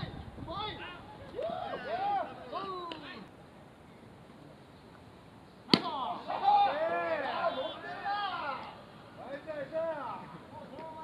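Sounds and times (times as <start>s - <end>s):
baseball bat hitting ball: 5.7s - 6.0s.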